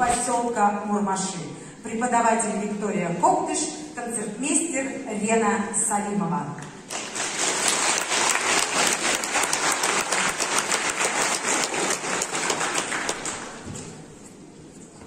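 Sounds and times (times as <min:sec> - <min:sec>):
audience applauding: 0:06.9 - 0:13.7.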